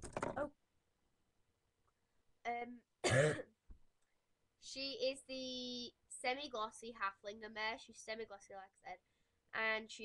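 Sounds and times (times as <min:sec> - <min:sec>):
person clearing throat: 0:03.0 - 0:03.5.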